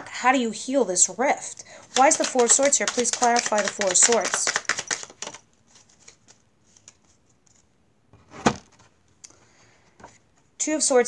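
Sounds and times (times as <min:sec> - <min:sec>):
cards being shuffled: 0:01.8 - 0:07.7.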